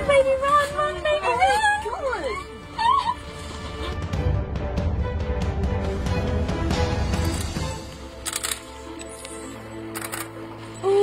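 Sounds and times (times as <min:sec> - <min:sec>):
background music: 0:00.0 - 0:11.0
person wailing and sobbing: 0:01.5 - 0:04.0.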